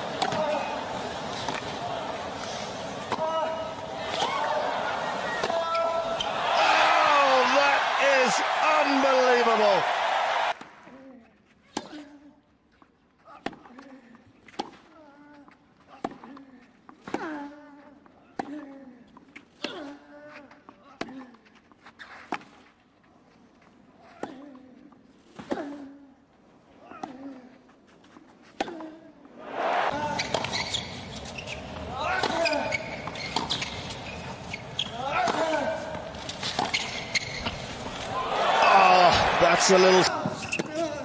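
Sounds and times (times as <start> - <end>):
stadium crowd cheering: 3.9 - 10.8, 29.4 - 30.0, 38.0 - 40.4
racket hitting tennis ball: 40.0 - 41.0.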